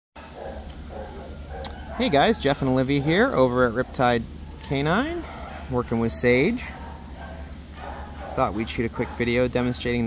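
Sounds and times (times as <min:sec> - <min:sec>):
dog barking faintly: 0:00.2 - 0:09.5
floor fan humming: 0:00.2 - 0:10.0.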